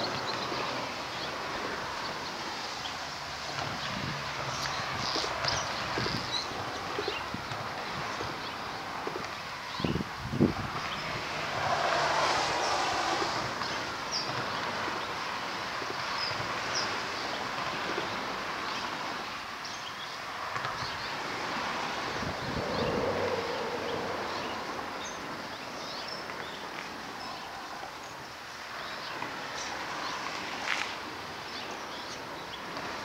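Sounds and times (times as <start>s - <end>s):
wind noise on microphone: 3.2s - 19.3s, 20.6s - 27.3s.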